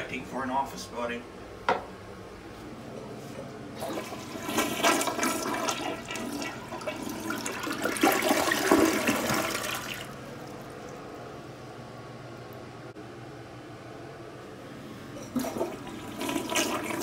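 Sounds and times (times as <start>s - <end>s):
toilet flushing: 3.7s - 11.2s, 14.9s - 17.0s.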